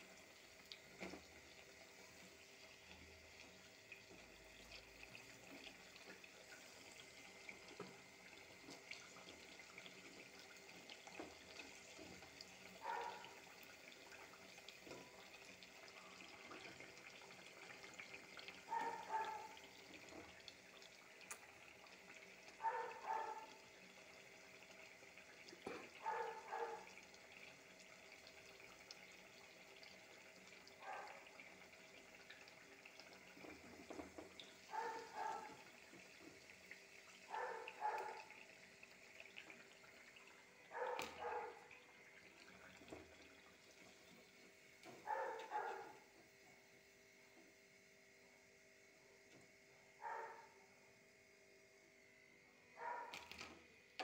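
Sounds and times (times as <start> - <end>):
distant dog barking: 12.8 - 13.4, 18.7 - 19.6, 22.6 - 23.6, 26.0 - 27.0, 30.8 - 31.3, 34.7 - 35.6, 37.3 - 38.4, 40.7 - 41.7, 45.0 - 46.0, 50.0 - 50.6, 52.8 - 53.2.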